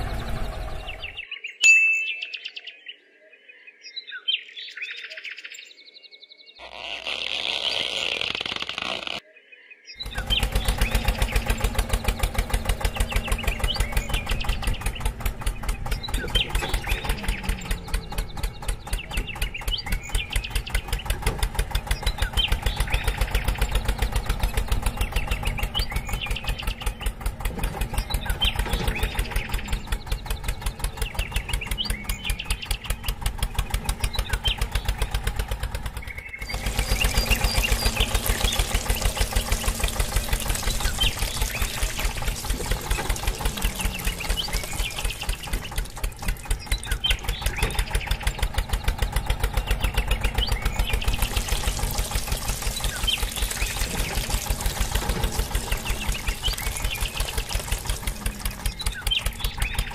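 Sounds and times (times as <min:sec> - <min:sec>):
toy tractor engine running: 0:06.6 - 0:09.2, 0:10.0 - 0:59.9.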